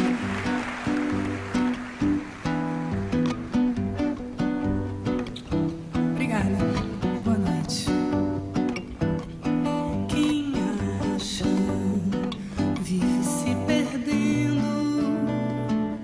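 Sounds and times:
acoustic guitars playing samba: 0.0 - 16.0.

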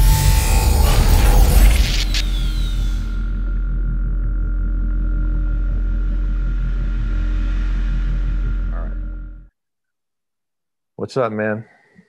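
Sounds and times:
falling whistle-like sweep: 0.0 - 3.6
deep steady drone: 0.0 - 9.5.

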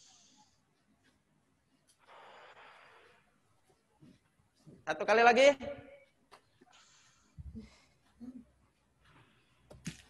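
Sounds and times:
soft breath in: 2.0 - 3.3.

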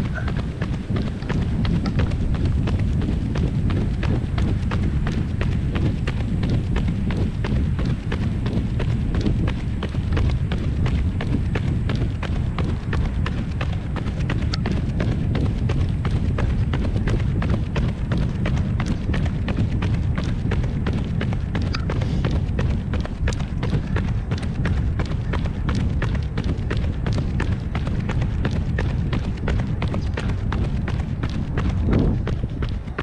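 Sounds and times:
low rumble: 0.0 - 33.0
running footsteps on pavement: 0.0 - 33.0.

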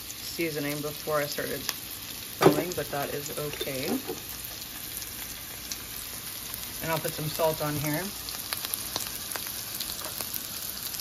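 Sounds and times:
oil sizzling in frying pan: 0.0 - 11.0.

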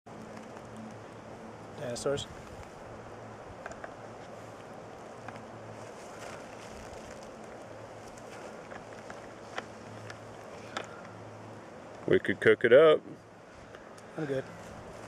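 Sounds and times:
steady hiss: 0.1 - 15.0.

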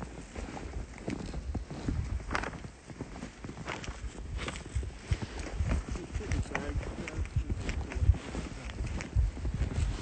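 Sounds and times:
footsteps trudging through snow: 0.0 - 10.0.

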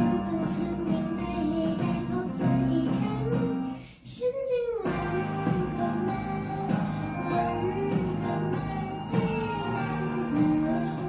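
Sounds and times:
girl singing pop ballad: 0.0 - 11.0
instrumental accompaniment: 4.8 - 11.0.

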